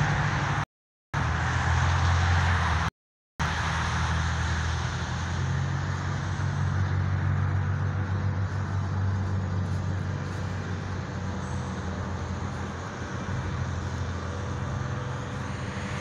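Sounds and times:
road traffic noise: 0:00.0 - 0:16.0
vehicle engine hum: 0:00.0 - 0:16.0.

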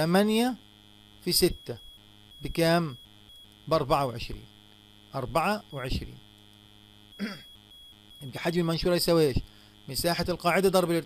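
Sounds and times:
electrical mains hum: 0:00.0 - 0:11.0
faint high whine: 0:00.0 - 0:11.0.

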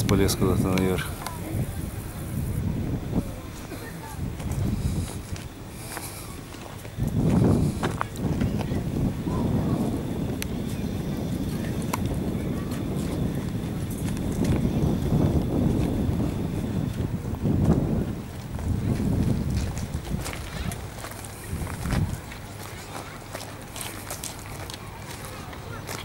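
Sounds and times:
indistinct voices: 0:00.0 - 0:17.2
steady low rumble: 0:00.0 - 0:26.0.

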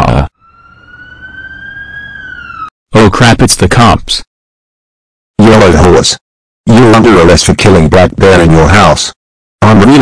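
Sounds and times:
police siren wailing: 0:00.0 - 0:02.7.

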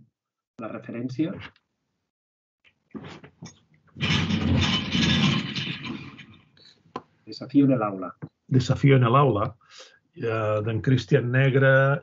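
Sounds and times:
rustling on headset microphone: 0:03.0 - 0:05.8.

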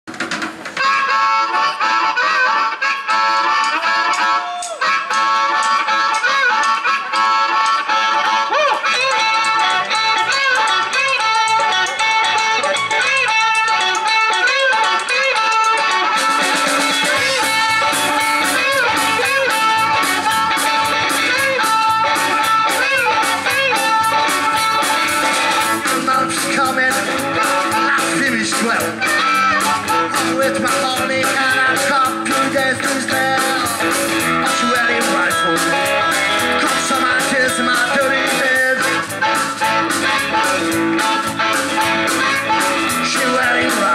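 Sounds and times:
bass guitar: 0:00.0 - 0:43.9
drums: 0:00.0 - 0:43.9
electric guitar: 0:00.1 - 0:43.9
harmonica: 0:00.6 - 0:43.9.

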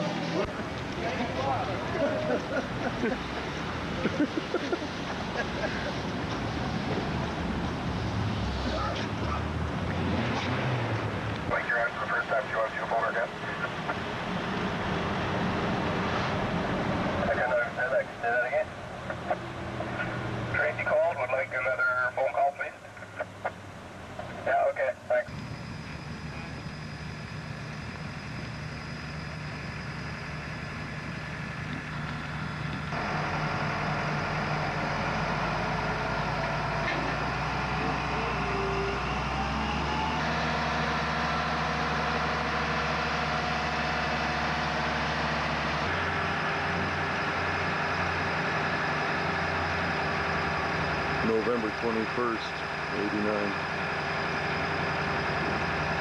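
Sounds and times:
voices: 0:00.0 - 0:06.0, 0:08.6 - 0:09.5, 0:11.4 - 0:14.2, 0:17.1 - 0:28.8, 0:47.4 - 0:56.0
vehicle engine running: 0:00.0 - 0:56.0.

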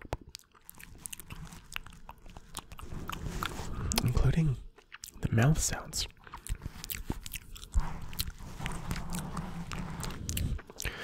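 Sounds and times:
lip and tongue clicks: 0:00.0 - 0:05.4, 0:06.0 - 0:11.0
wet mouth sounds: 0:00.0 - 0:11.0.

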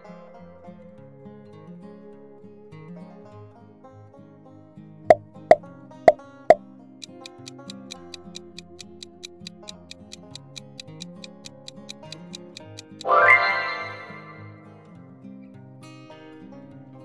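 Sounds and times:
plucked-string background music: 0:00.0 - 0:17.0
clock-like ticking: 0:07.0 - 0:13.1
sharp pops: 0:07.0 - 0:13.1.

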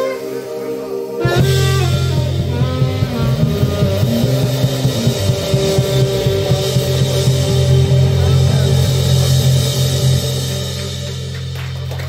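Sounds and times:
saxophone: 0:00.0 - 0:11.6
drums: 0:00.0 - 0:12.0
electric bass line: 0:00.0 - 0:12.0
keyboard: 0:00.0 - 0:12.0.

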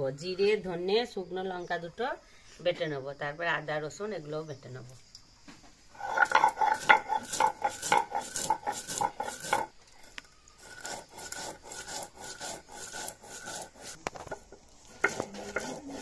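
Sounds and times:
stone grinding on stone: 0:06.0 - 0:16.0.

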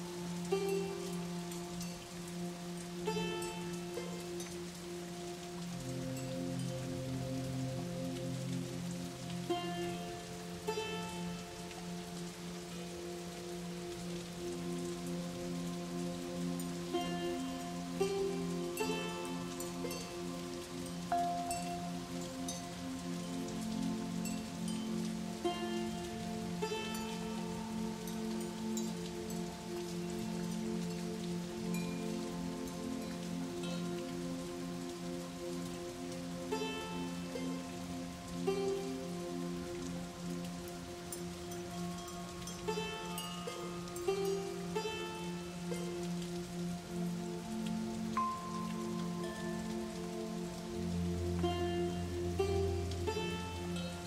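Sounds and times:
ambient held chords: 0:00.0 - 0:54.0
rain-like hiss: 0:00.0 - 0:54.0.

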